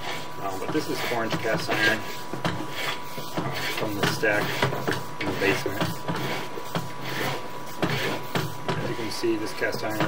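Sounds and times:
rod scraping inside pipe: 0.0s - 10.0s.

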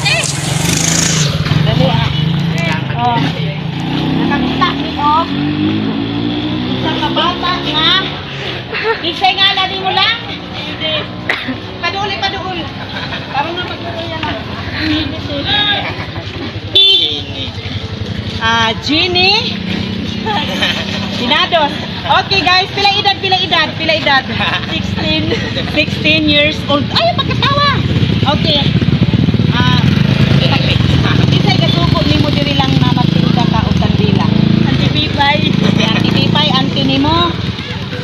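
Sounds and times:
street traffic noise: 0.0s - 38.0s
vehicle engine running: 0.0s - 38.0s
voices: 0.0s - 38.0s
vehicle horn toot: 16.6s - 17.5s.

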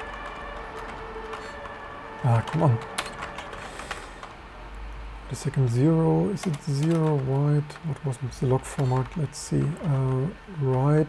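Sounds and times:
background hum: 0.0s - 11.0s
computer keyboard clicks: 2.4s - 4.3s, 6.4s - 8.0s, 8.6s - 10.9s.

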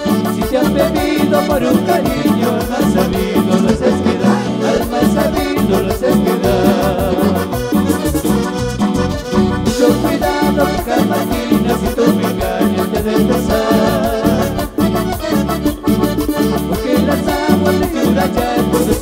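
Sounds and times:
bass: 0.0s - 19.0s
keyboard melody: 0.0s - 19.0s.

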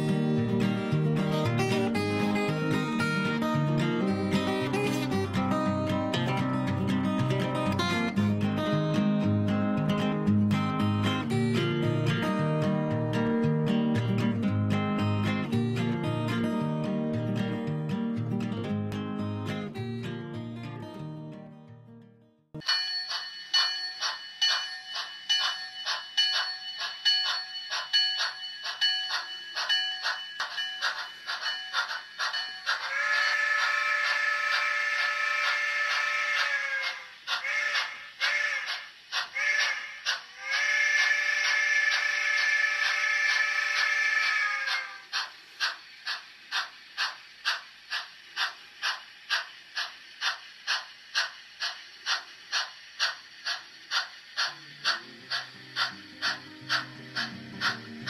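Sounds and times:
model steam locomotive chuffing: 0.0s - 21.3s, 22.6s - 58.0s
locomotive bell ringing: 22.6s - 35.1s.

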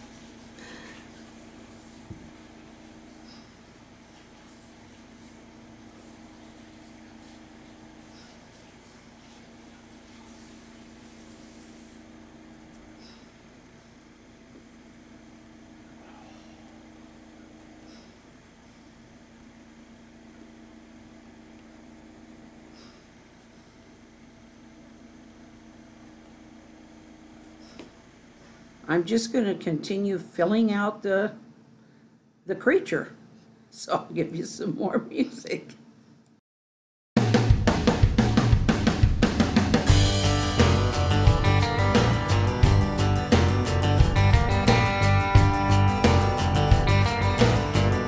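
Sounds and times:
oxygen concentrator humming: 0.0s - 35.8s, 37.3s - 48.0s.

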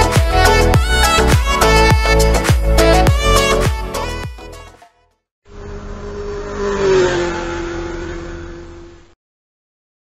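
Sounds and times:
motorcycle engine revving: 5.5s - 9.2s.

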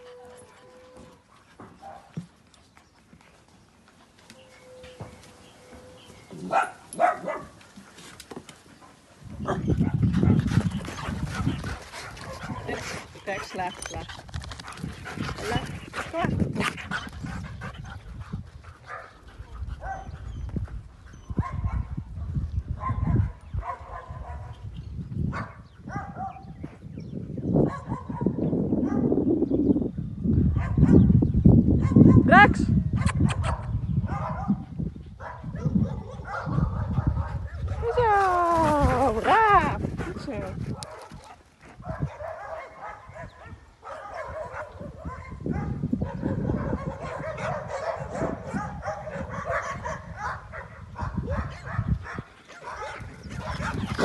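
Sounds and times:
dogs barking and yelping: 0.0s - 2.2s, 4.3s - 14.0s, 16.8s - 22.0s, 27.6s - 29.2s, 33.0s - 38.2s, 39.0s - 54.0s.

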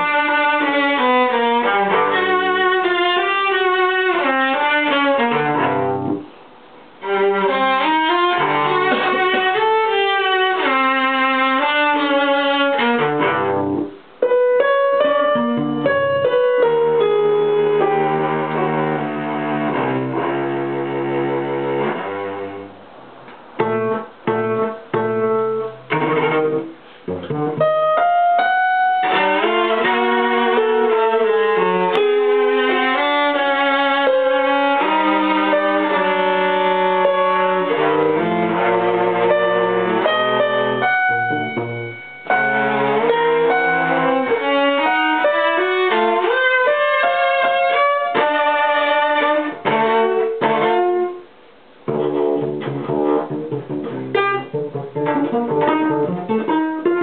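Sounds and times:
bowed strings: 0.0s - 6.4s, 7.0s - 14.0s, 15.0s - 57.0s
piano: 0.0s - 57.0s.

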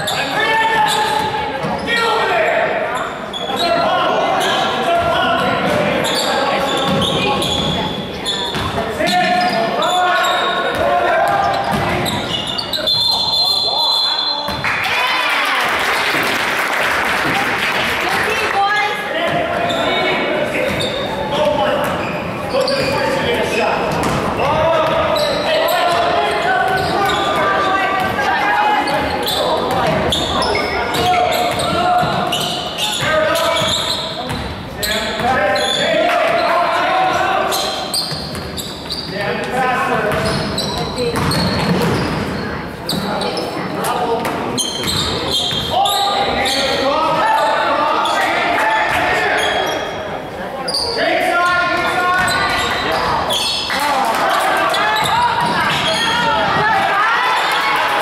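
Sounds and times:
echoing voices: 0.0s - 58.0s
basketball dribbling on court: 40.1s - 42.2s.

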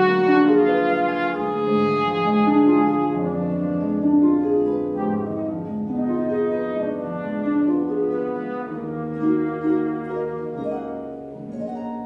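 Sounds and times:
trombone playing slow melody: 0.0s - 10.6s
harp accompaniment: 0.0s - 12.0s.

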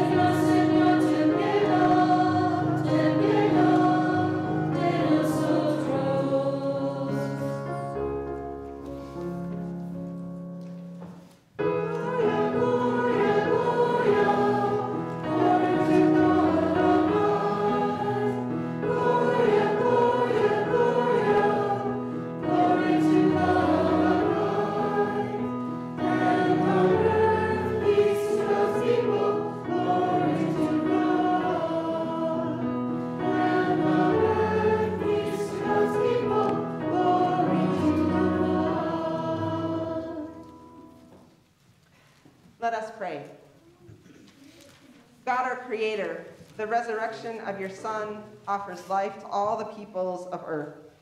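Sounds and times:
congregation singing a hymn: 0.0s - 8.2s, 11.1s - 41.2s
instrumental accompaniment: 0.0s - 41.6s.

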